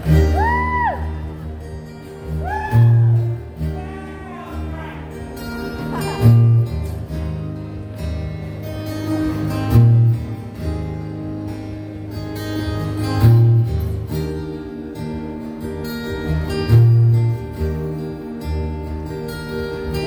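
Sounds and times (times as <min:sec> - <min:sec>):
strummed acoustic guitars: 0:00.0 - 0:20.0.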